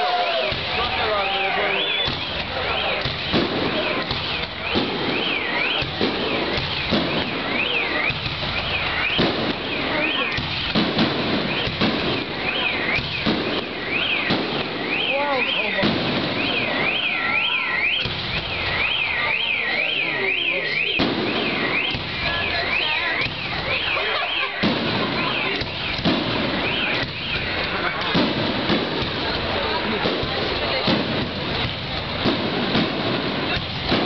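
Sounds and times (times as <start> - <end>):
car alarm wailing: 0.0 - 31.2
fireworks bangs and crackle: 0.0 - 34.0.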